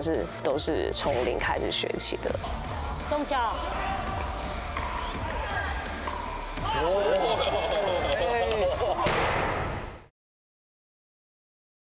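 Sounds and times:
voices exclaiming: 0:02.5 - 0:09.0.

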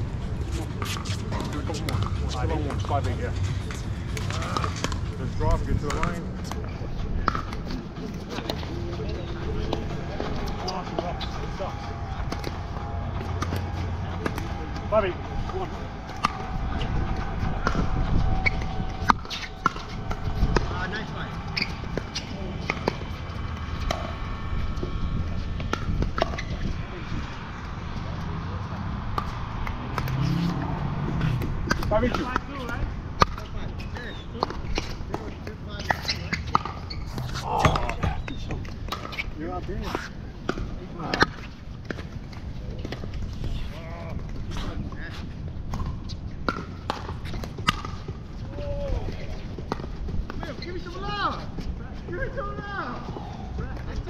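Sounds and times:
wind rumble on microphone: 0:00.0 - 0:35.5
ball bouncing on hard court: 0:25.6 - 0:26.7, 0:29.1 - 0:39.2.

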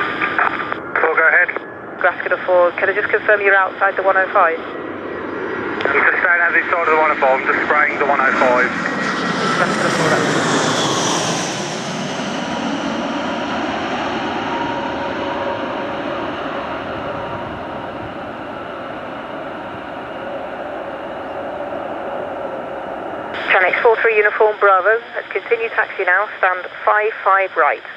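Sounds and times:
jet engines whining: 0:00.0 - 0:27.9.

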